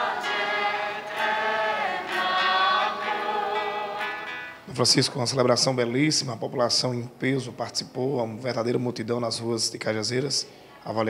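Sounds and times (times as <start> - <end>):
choir singing a hymn: 0.0 - 5.9.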